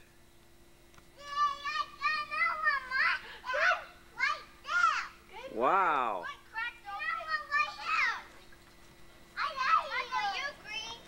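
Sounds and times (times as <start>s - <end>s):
faint steady hum: 0.0s - 11.0s
young children calling out: 1.2s - 8.4s, 9.4s - 11.0s.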